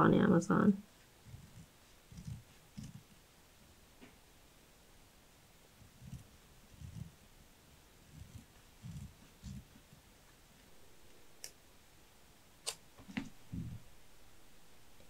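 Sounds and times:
soft low bumps: 1.1 - 3.2, 5.7 - 11.3, 13.0 - 14.1.

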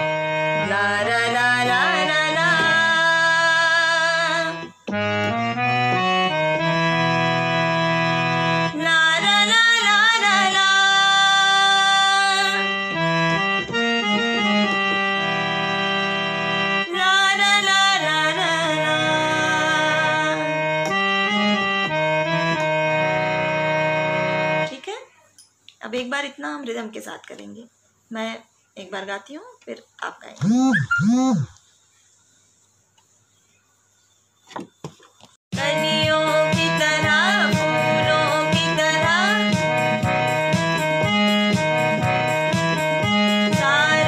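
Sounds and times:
harmonium melody: 0.0 - 25.0, 35.6 - 44.0
steady bass note: 30.4 - 31.5
sustained reed chords: 30.4 - 31.6.

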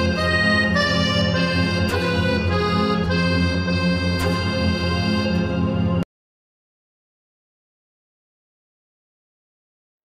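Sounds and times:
background music with drone: 0.0 - 6.0.

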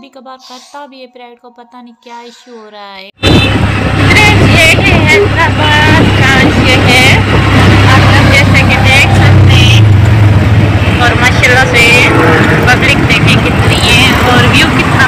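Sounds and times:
indistinct voices: 0.0 - 10.0, 10.8 - 15.0
auto-rickshaw engine droning: 3.2 - 15.0.

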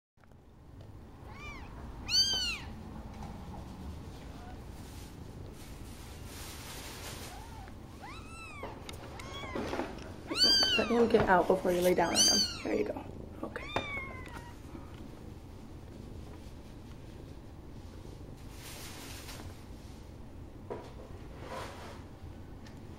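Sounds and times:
faint background noise: 0.2 - 22.9
kitten mewing: 1.2 - 2.8, 7.3 - 9.7, 10.3 - 11.0, 12.1 - 12.7.

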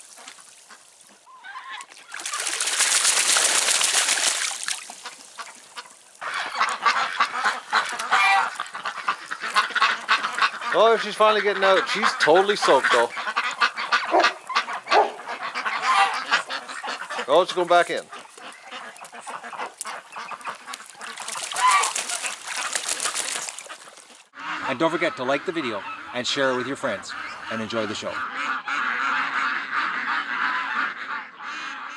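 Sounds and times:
wings flapping: 1.8 - 24.3
ducks quacking: 4.9 - 31.9.

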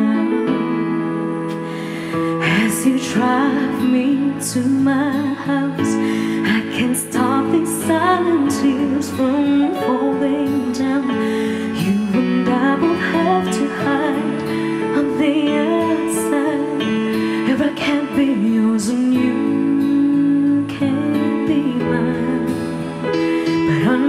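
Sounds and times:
instrumental accompaniment: 0.0 - 24.0
woman singing a ballad: 0.0 - 24.0.

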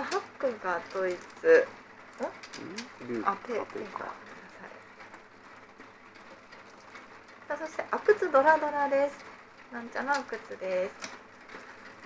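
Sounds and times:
low room noise: 0.0 - 12.0
mahjong tiles clicking: 5.0 - 12.0.

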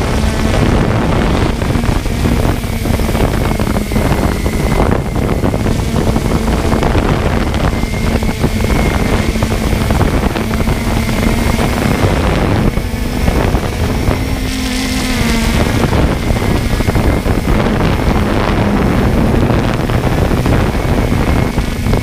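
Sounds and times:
drone propellers buzzing: 0.0 - 22.0
wind on microphone: 0.0 - 22.0.

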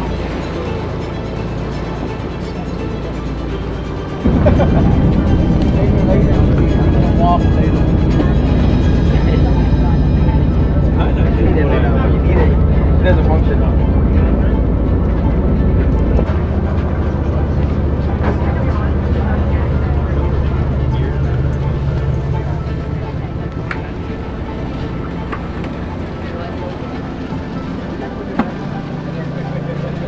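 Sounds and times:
background music: 0.0 - 30.0
ferry engines rumbling: 0.0 - 30.0
passengers' voices: 0.0 - 30.0.

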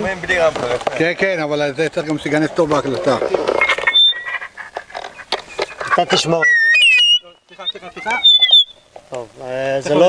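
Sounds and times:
feedback squeal: 3.5 - 8.9.

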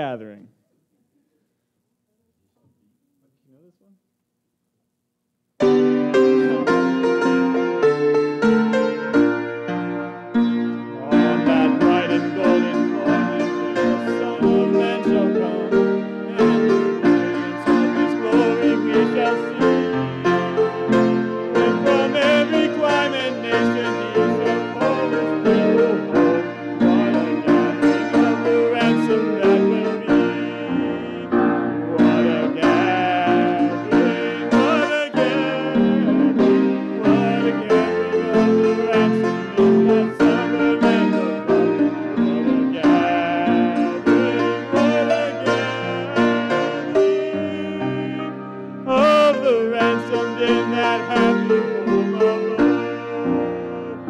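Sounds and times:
accordion: 5.6 - 54.0
gospel hymn on piano: 5.6 - 54.0
man leading singing: 5.8 - 8.3, 10.9 - 54.0.

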